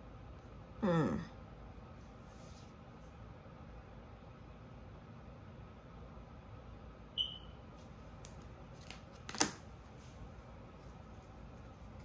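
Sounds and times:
card slapping on tabletop: 8.2s - 9.7s.

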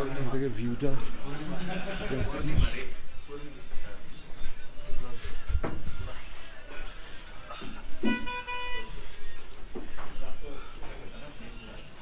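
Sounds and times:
vehicle horn honking: 8.0s - 9.0s.

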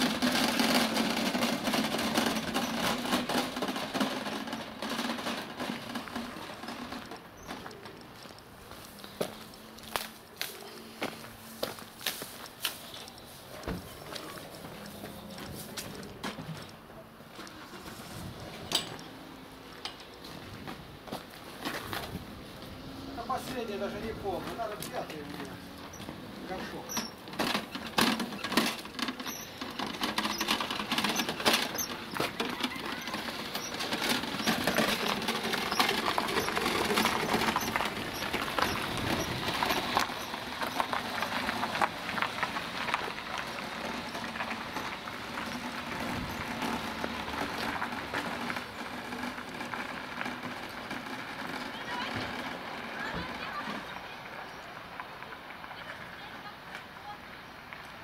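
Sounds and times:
metal cart rattling over asphalt: 0.0s - 10.6s, 11.4s - 58.0s.

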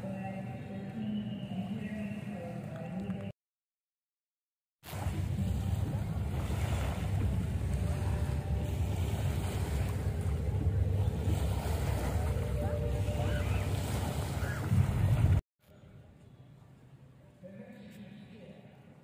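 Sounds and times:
small waves lapping shore: 4.8s - 15.4s
wind buffeting microphone: 5.0s - 15.4s.

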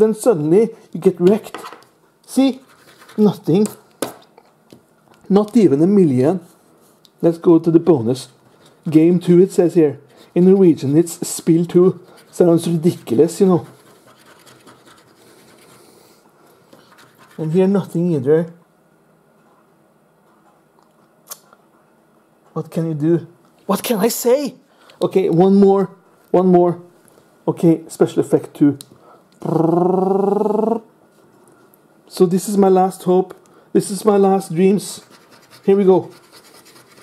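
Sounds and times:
man making rough vocal noise: 29.4s - 30.9s.

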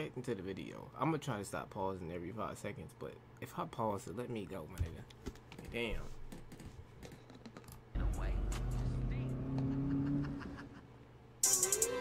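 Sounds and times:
car engine revving: 8.0s - 10.6s.

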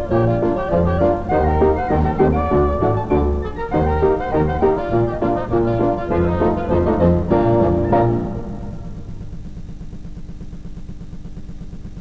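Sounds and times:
faint steady hum: 0.0s - 12.0s
fast low mechanical pulsing: 0.0s - 12.0s.

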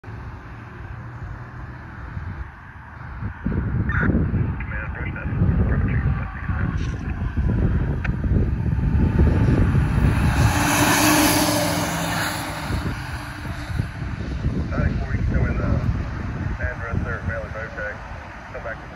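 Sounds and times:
wind buffeting microphone: 2.0s - 18.9s
truck driving past: 7.0s - 16.6s.

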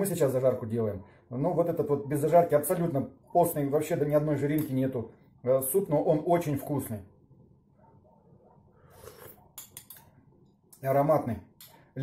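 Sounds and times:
soft sip of soup: 8.8s - 10.1s.

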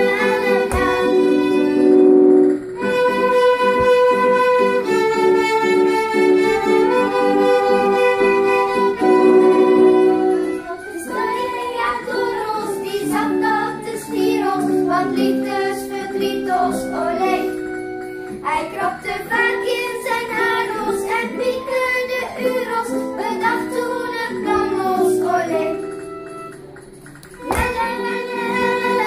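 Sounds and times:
voices singing: 0.0s - 2.0s, 10.4s - 17.7s, 27.4s - 29.0s
flutes playing: 0.0s - 12.0s
violins playing: 0.0s - 12.2s, 27.4s - 29.0s.

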